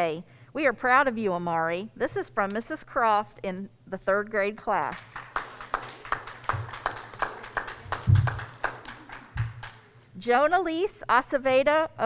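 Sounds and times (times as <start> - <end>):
people clapping: 4.9 - 10.1
dull low thumps: 8.0 - 8.4.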